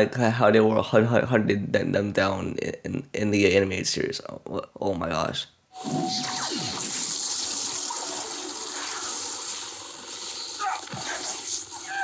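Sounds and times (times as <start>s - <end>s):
energy blast rushing hiss: 5.8s - 12.0s.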